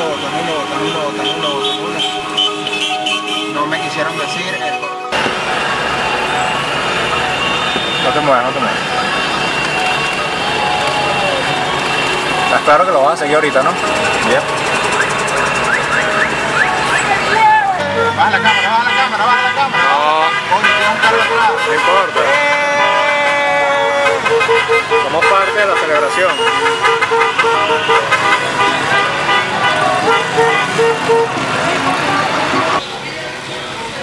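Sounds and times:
motorcycle engines passing: 0:00.0 - 0:34.0
motorcycle engines running: 0:09.1 - 0:18.0, 0:27.5 - 0:32.8
voices shouting: 0:09.2 - 0:12.3, 0:15.3 - 0:32.8.

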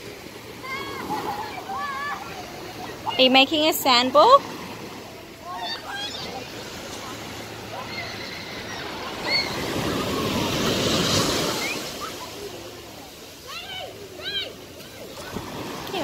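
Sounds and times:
ocean waves on beach: 0:00.0 - 0:16.0.

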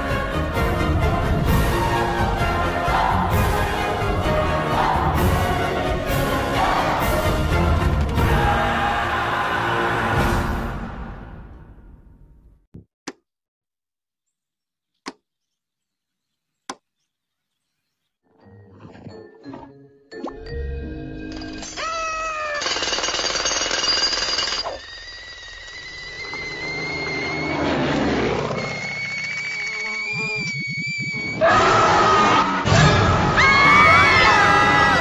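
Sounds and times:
cartoon music with gliding tones: 0:18.2 - 0:21.8
screaming: 0:21.8 - 0:22.7, 0:25.1 - 0:35.0.

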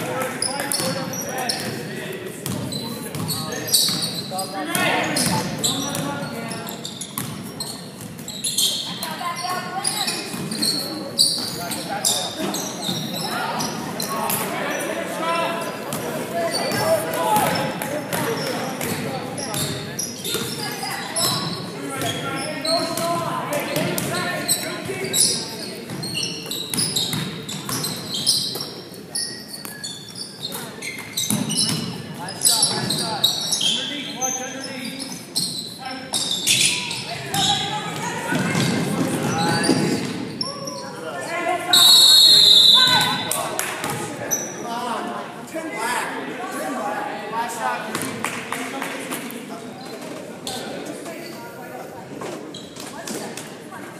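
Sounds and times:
voices echoing in gym: 0:00.0 - 0:53.9
sneakers squeaking: 0:00.1 - 0:44.7, 0:47.9 - 0:48.2, 0:52.2 - 0:53.3
basketball bouncing: 0:02.4 - 0:04.0, 0:07.2 - 0:07.4, 0:26.7 - 0:28.0.

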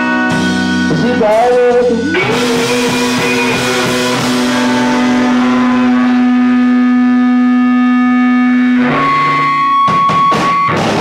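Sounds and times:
electric guitar chords and strums: 0:00.0 - 0:11.0.

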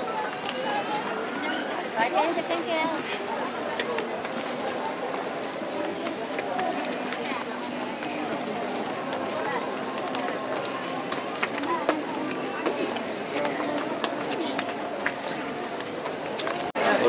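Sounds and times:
crowd babble: 0:00.0 - 0:17.0.

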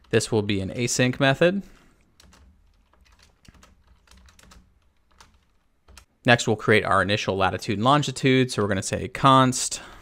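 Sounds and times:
keyboard typing: 0:02.0 - 0:06.1.

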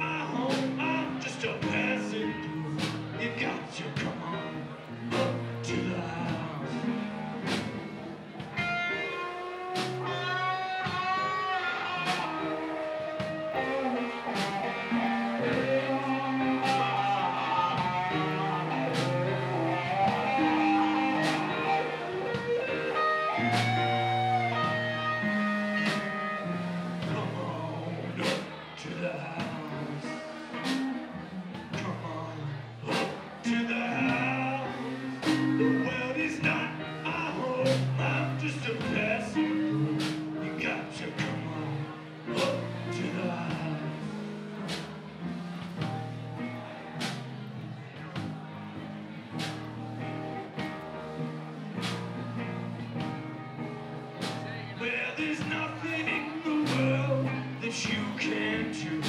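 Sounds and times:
electric guitar lead: 0:00.0 - 0:59.0
live blues band playing: 0:00.0 - 0:59.0.

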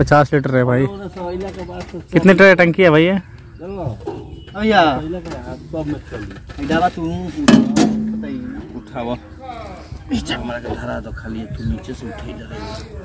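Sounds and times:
men talking indistinctly: 0:00.0 - 0:13.0.

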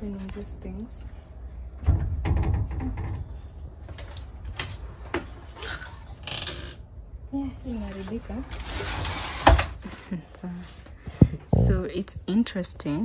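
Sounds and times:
window sash scraping: 0:08.5 - 0:09.8.

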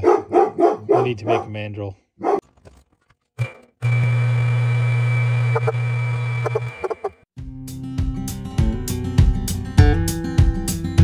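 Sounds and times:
metal lathe motor running: 0:03.4 - 0:07.2.

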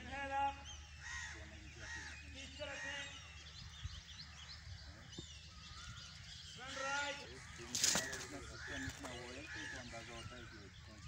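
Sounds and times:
birds chirping and whistling: 0:00.0 - 0:11.0
crow cawing: 0:01.0 - 0:02.9, 0:06.8 - 0:10.5.

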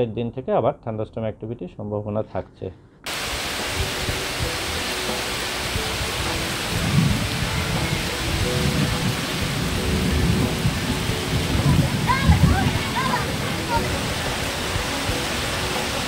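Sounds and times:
wind: 0:00.0 - 0:16.0
heavy rain pouring: 0:03.1 - 0:16.0.

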